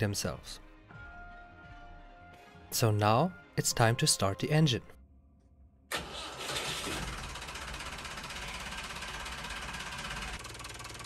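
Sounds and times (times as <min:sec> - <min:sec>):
boat engine starting and idling: 0:05.9 - 0:11.0.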